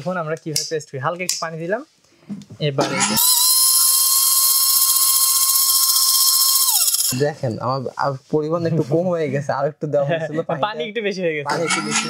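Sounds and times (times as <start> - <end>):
mixer grinder motor whining: 3.0 - 7.2.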